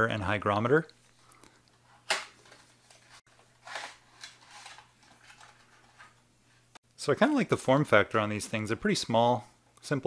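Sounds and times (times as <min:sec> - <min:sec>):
rustling and scraping in box: 0:02.6 - 0:06.2.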